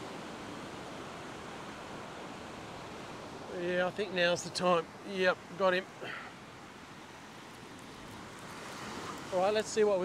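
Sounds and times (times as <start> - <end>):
faint surf on beach: 0.0 - 10.0.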